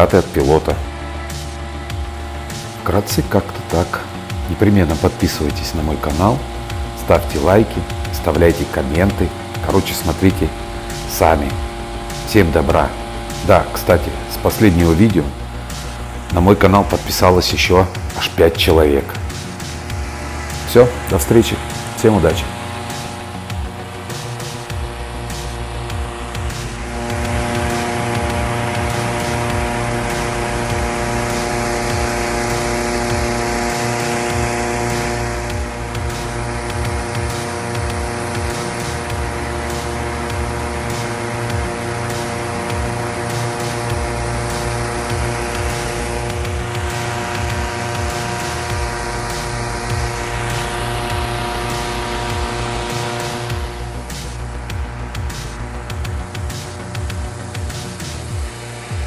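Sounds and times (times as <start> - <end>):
background music with steady beat: 0.0 - 59.0.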